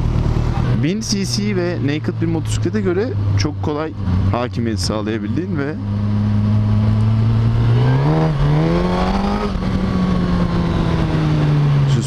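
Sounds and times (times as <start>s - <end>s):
motorcycle engine revving: 0.0s - 12.0s.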